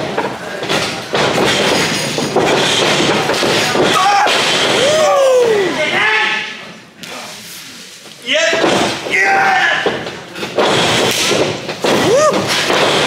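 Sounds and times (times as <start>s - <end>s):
people shouting and yelling: 3.8s - 6.6s, 8.3s - 10.0s, 11.8s - 13.0s.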